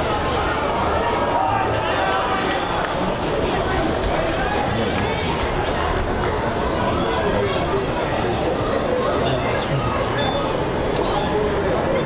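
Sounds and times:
people talking indistinctly: 1.4 - 12.0.

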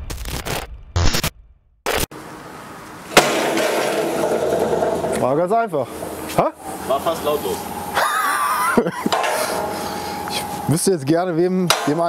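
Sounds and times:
glitchy electronic sound effects: 0.1 - 1.3.

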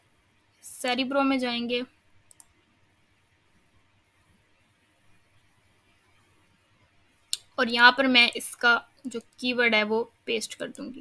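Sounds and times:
computer mouse click: 2.3 - 2.6, 9.0 - 9.4, 10.6 - 10.9.

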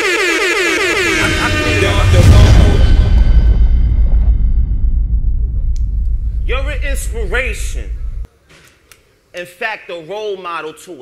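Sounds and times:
air horn blasts: 0.0 - 2.9
deep rumbling boom: 1.0 - 8.3.

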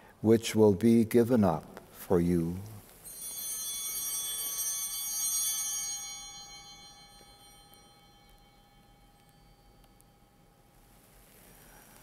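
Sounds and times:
altar bell ringing: 3.0 - 11.6.

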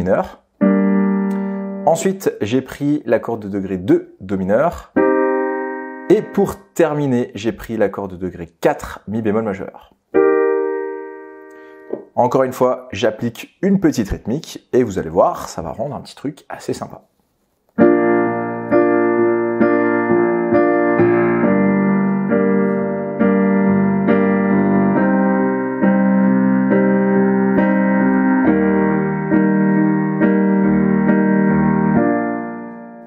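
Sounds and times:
digital piano chords: 0.0 - 17.0, 17.7 - 33.0.

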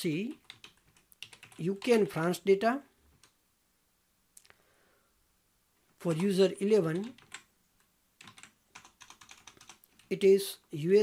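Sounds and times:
typing on computer keyboard: 0.3 - 2.0, 6.1 - 7.5, 8.2 - 10.1.

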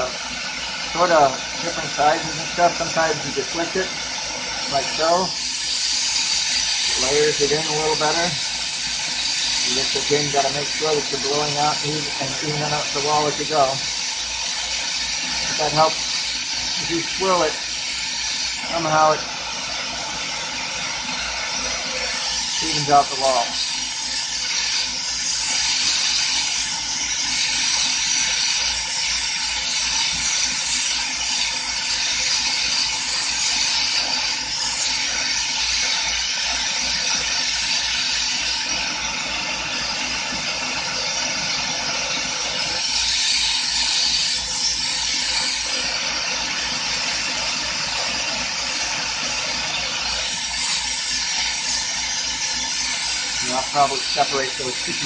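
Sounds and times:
torch burning with a hiss: 0.0 - 55.0.

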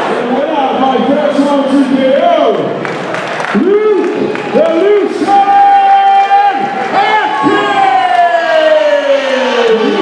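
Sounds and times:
crowd noise: 0.0 - 10.0.

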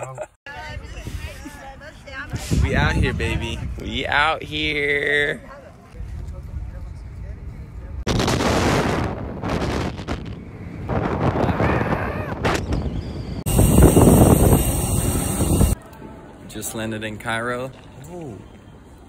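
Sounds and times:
wind buffeting microphone: 0.6 - 4.6, 6.0 - 15.8.

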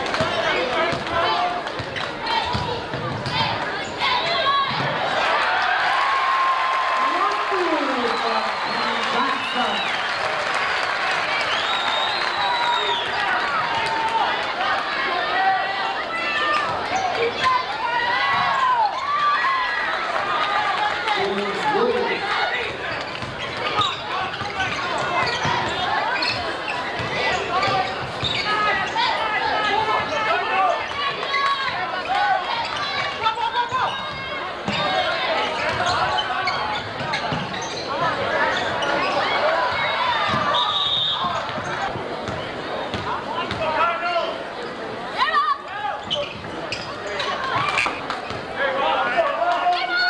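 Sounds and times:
crowd voices and shouts: 0.0 - 50.0
basketball bouncing on court: 0.1 - 3.8, 23.0 - 25.9, 26.8 - 28.5, 35.6 - 37.8, 41.2 - 43.7, 47.5 - 48.5
sneakers squeaking: 1.7 - 5.0, 21.2 - 29.2, 29.9 - 43.7, 45.9 - 48.6
referee's whistle: 11.4 - 13.2, 39.8 - 41.4.

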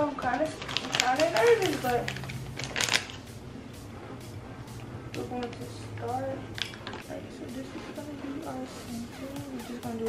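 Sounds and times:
sharp clicks and taps: 4.2 - 7.1.

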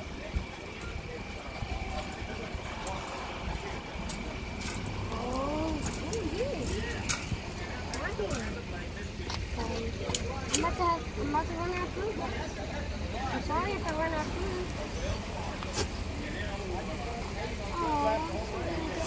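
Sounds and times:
indistinct voices: 0.0 - 19.0.

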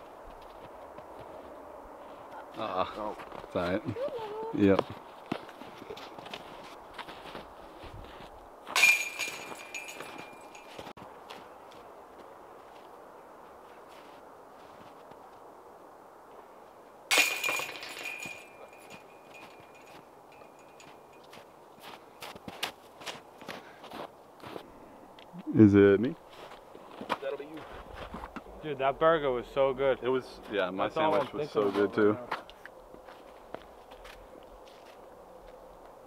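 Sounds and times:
footsteps crunching in snow: 0.0 - 15.5, 18.2 - 24.8, 26.2 - 28.5, 30.3 - 36.0
discs crashing into metal chains: 8.8 - 10.5, 17.1 - 18.9.

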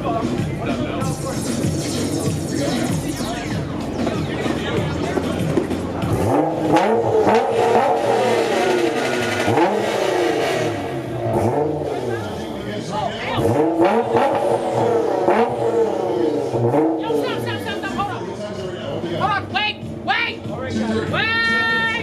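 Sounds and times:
car engine revving: 0.0 - 21.8.

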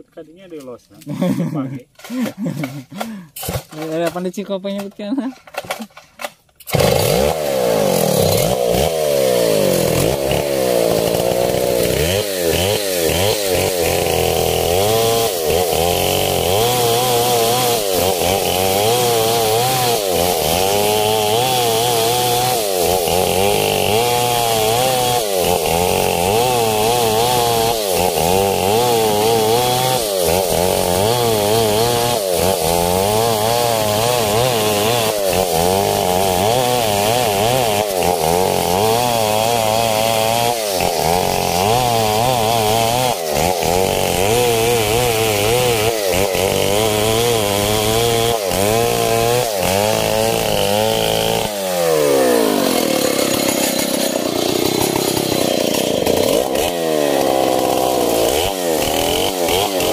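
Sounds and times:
chainsaw cutting wood: 1.0 - 59.9.

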